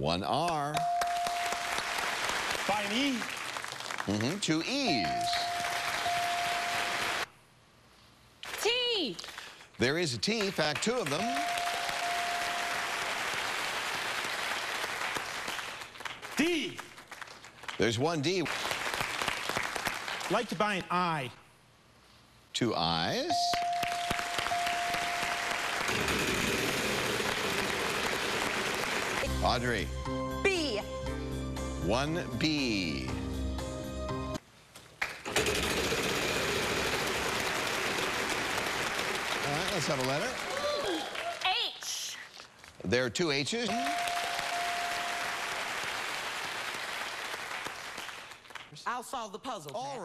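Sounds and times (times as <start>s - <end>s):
studio audience applauding: 0.4s - 7.3s, 10.2s - 21.0s, 23.1s - 29.3s, 35.0s - 41.6s, 43.7s - 48.8s.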